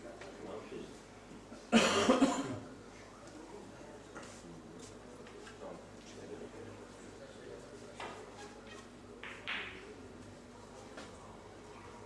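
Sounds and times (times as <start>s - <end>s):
person coughing: 1.7s - 2.6s.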